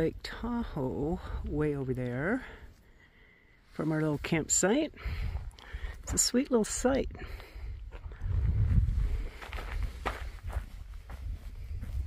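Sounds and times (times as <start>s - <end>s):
footsteps on sandy dirt: 7.5s - 12.0s.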